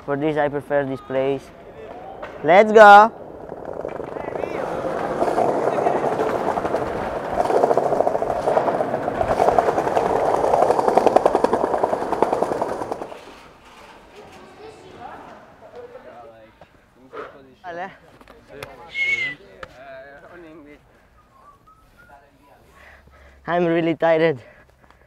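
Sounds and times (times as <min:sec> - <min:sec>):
skateboard wheels rolling on pavement: 0:00.2 - 0:16.8.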